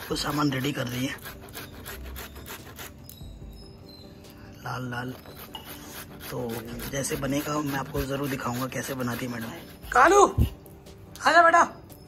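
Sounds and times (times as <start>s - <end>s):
carrots grated on metal grater: 5.1s - 10.2s.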